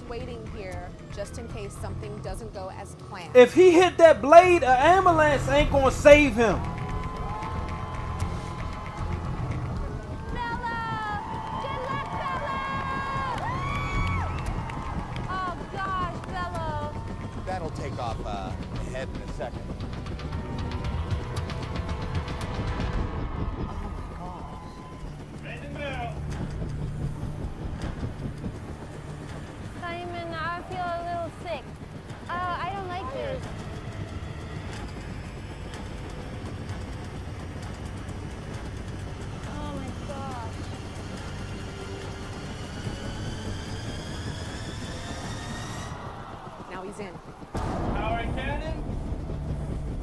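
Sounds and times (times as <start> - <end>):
low engine-like rumble: 0.0 - 50.0
music: 0.0 - 50.0
rising whine: 3.4 - 50.0.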